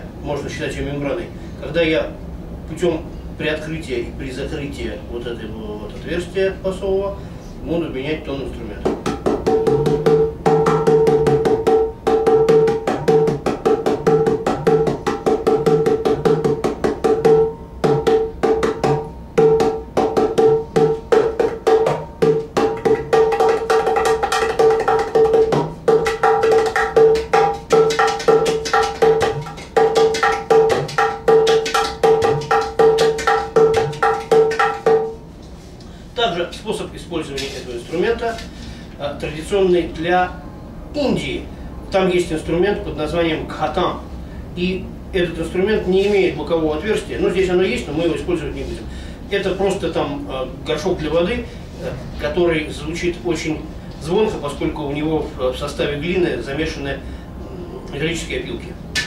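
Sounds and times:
deep bass tones of clay pot: 0:08.7 - 0:35.3.

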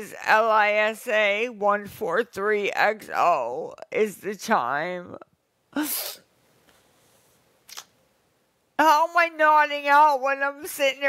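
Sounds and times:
woman laughing breathily: 0:05.8 - 0:06.2.

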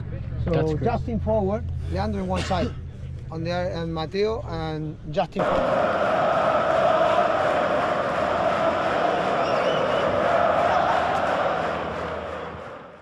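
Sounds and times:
crowd cheering and chanting: 0:05.4 - 0:13.0.

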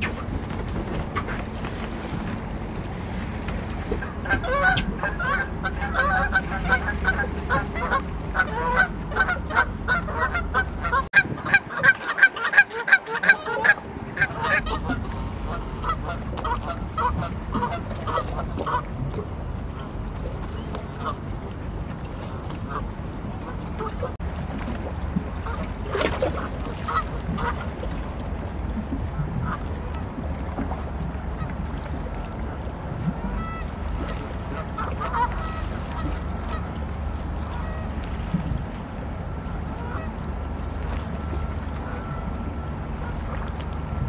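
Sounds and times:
low steady rumble: 0:00.0 - 0:44.0
goose honking: 0:04.3 - 0:18.8, 0:33.4 - 0:33.7, 0:34.6 - 0:36.7.

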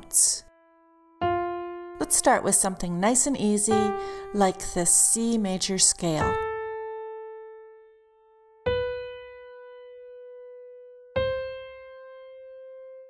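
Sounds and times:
piano notes ringing: 0:00.0 - 0:13.0.

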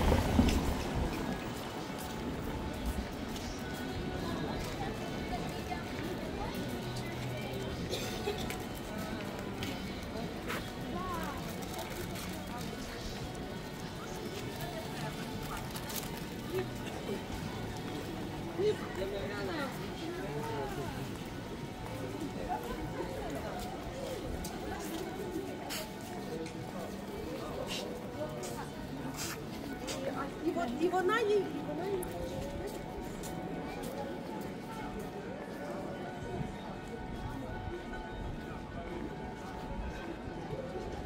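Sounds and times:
crowd talking: 0:00.0 - 0:41.0.

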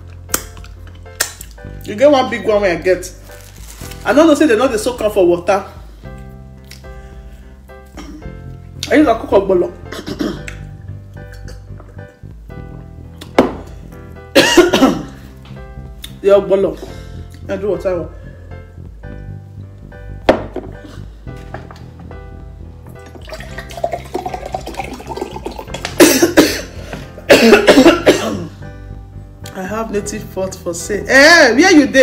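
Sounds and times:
quiet background music: 0:00.0 - 0:32.0
woman coughing: 0:08.0 - 0:08.2, 0:09.9 - 0:10.5, 0:14.4 - 0:15.2, 0:26.0 - 0:26.7, 0:27.3 - 0:28.6.

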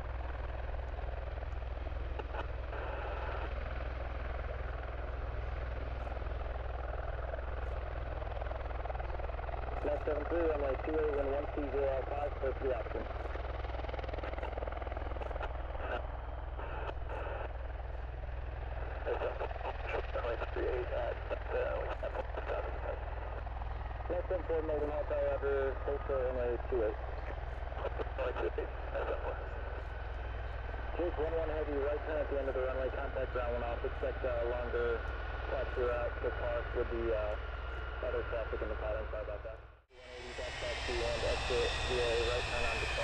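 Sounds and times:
jet engines rumbling: 0:00.0 - 0:43.0
radio chatter: 0:02.2 - 0:03.6, 0:09.8 - 0:17.6, 0:18.8 - 0:43.0.

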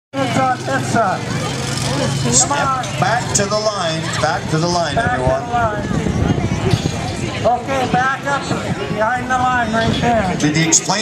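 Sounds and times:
vehicle engine running: 0:00.2 - 0:06.6.

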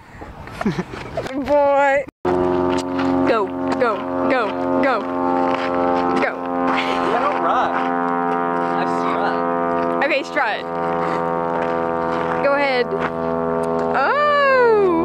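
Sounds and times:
voices calling and laughing: 0:00.4 - 0:01.9, 0:06.2 - 0:07.9
droning tone with overtones: 0:02.3 - 0:15.0.

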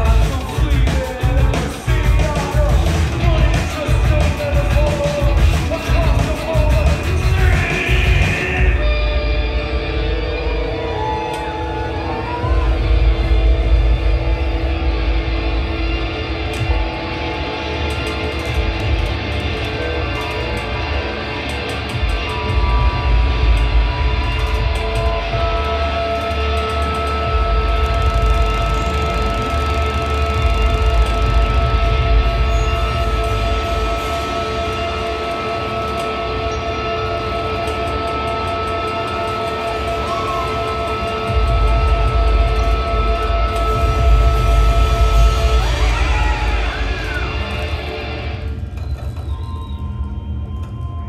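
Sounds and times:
live rock band playing: 0:00.0 - 0:11.2
drums: 0:00.0 - 0:51.0
heavy bass: 0:00.0 - 0:51.0
low rumble: 0:00.0 - 0:51.0
synthesizer sustained tones: 0:00.0 - 0:51.0
electric guitar sustained tones: 0:05.3 - 0:51.0
pitch sweeps: 0:22.3 - 0:51.0.

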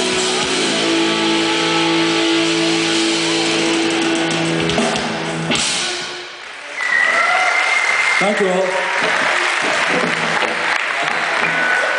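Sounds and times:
rock band playing live: 0:00.0 - 0:06.6
crowd reacting: 0:06.4 - 0:11.9.

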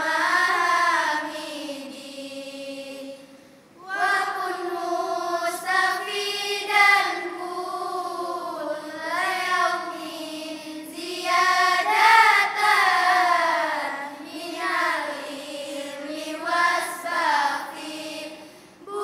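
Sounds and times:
girls chanting in unison: 0:00.0 - 0:03.2, 0:03.8 - 0:19.0.

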